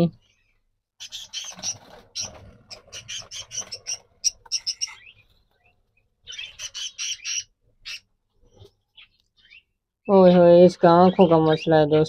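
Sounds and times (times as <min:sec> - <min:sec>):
budgerigar squawking: 0:01.0 - 0:05.2, 0:06.3 - 0:08.1.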